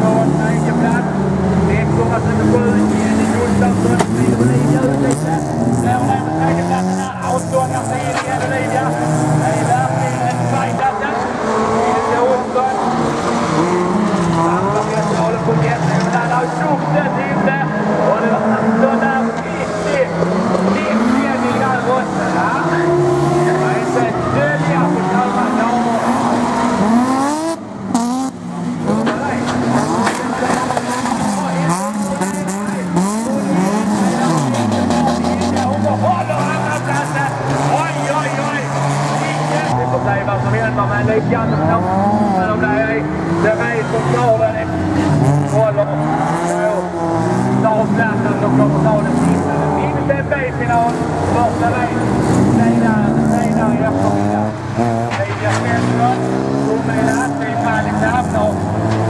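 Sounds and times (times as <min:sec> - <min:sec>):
race car engines revving: 0:00.0 - 0:59.0.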